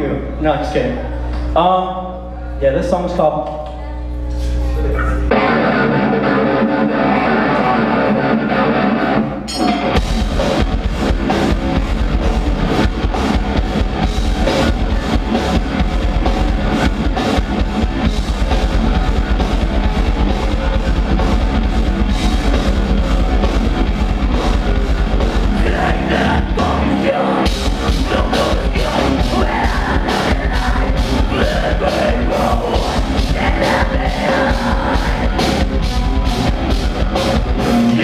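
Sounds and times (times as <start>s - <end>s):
distorted electric guitars: 4.1s - 38.0s
live metal band playing: 5.3s - 38.0s
fast drumming: 9.9s - 38.0s.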